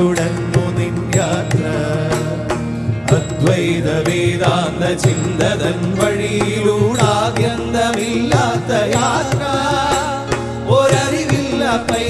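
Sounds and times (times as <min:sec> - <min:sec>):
devotional song: 0:00.0 - 0:12.0.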